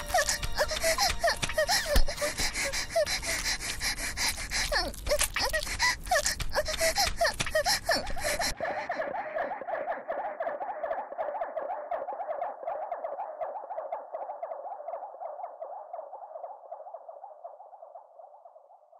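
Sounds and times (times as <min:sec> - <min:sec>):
electronic beat: 0:00.0 - 0:02.1.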